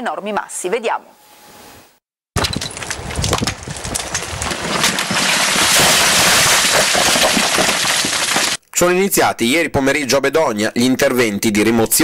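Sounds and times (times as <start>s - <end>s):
rocks crashing onto road: 2.4s - 8.6s.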